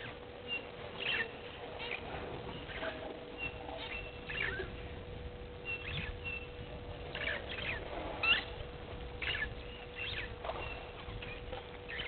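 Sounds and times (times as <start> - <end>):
birds chirping and whistling: 0.0 - 5.0, 5.6 - 12.0
faint steady hum: 0.0 - 12.0.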